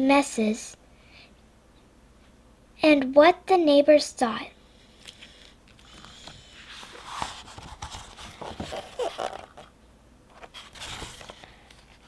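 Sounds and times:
book pages flipping: 5.1 - 9.7, 10.3 - 12.0.

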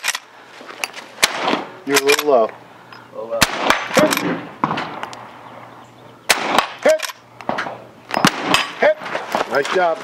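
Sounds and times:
rifle shots: 1.2 - 2.4, 3.4 - 5.1, 6.3 - 9.0.

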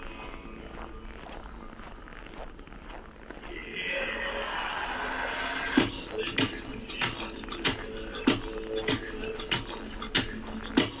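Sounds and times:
steady drum beat: 5.8 - 11.0.

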